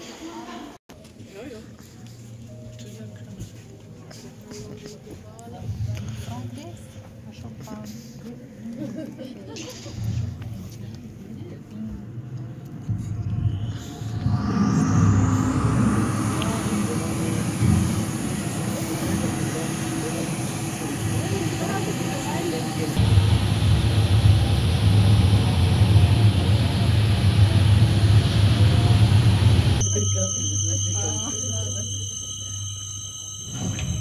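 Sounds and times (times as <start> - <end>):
deep rumble: 11.6 - 29.9
steady high tones: 12.0 - 23.3, 29.8 - 34.0
rising whoosh: 12.0 - 25.2
dense rushing noise: 12.7 - 29.8.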